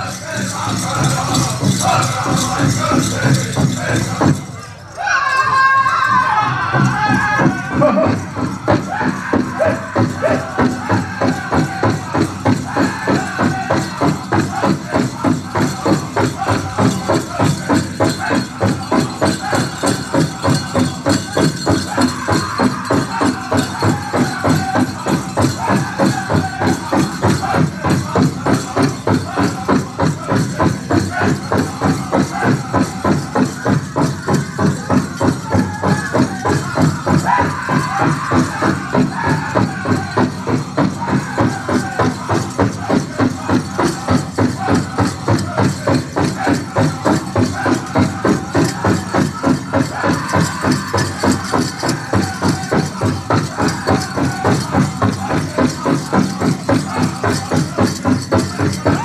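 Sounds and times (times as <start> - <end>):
large drum steady quick beat: 0.0 - 4.5, 6.8 - 59.0
high-pitched group singing: 0.0 - 59.0.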